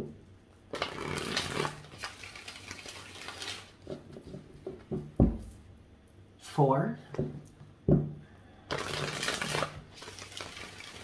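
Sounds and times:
cards being shuffled: 0.8 - 3.8, 8.7 - 11.0.

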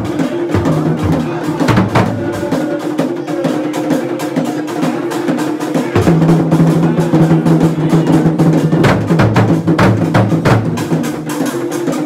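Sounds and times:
drum ensemble playing fast rhythm: 0.0 - 12.0.

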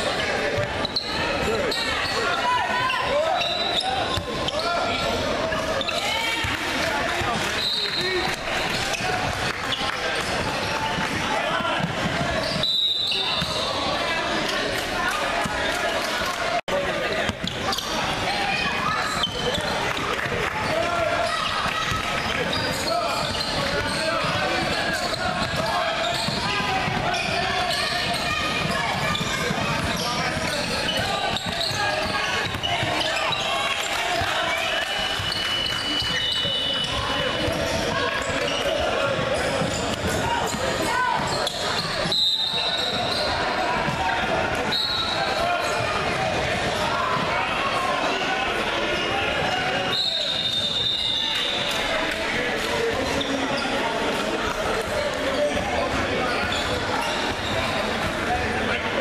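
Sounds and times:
indistinct voices in a gym: 0.0 - 59.0.

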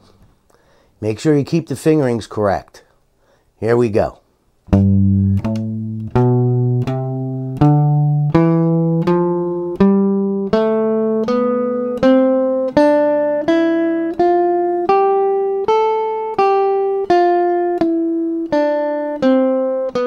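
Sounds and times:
guitar playing a scale: 4.7 - 20.0.

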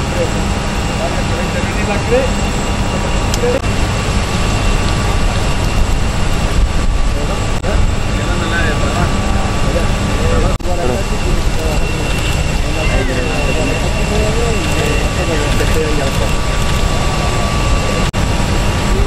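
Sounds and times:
faint voices: 0.0 - 3.7, 4.6 - 19.0
machinery roaring: 0.0 - 19.0
thin high whine: 0.0 - 19.0.

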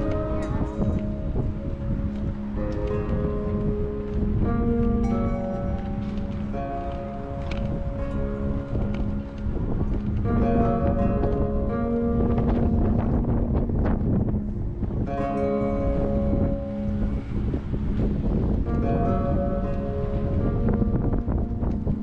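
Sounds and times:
soft music of sustained chords: 0.0 - 22.0
wind buffeting microphone: 0.0 - 22.0.

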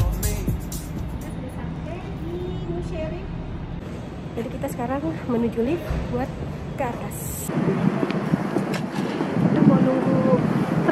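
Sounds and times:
low rumble of car park: 0.0 - 6.8.

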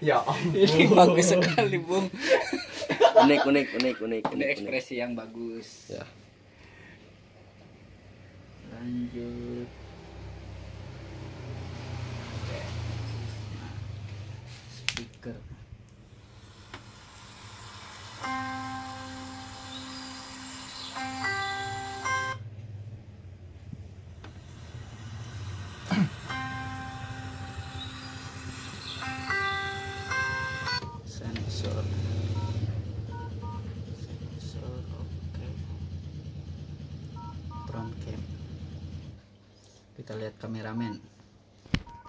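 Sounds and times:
phone speaker playing melody: 18.1 - 22.4, 25.6 - 31.1.

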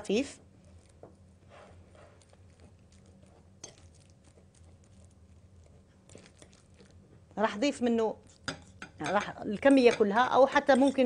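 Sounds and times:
bananas squishing under fork: 0.4 - 7.4, 8.2 - 9.3.

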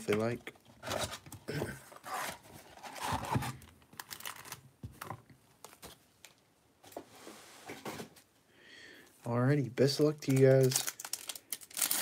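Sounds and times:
card packs being handled: 9.9 - 12.0.

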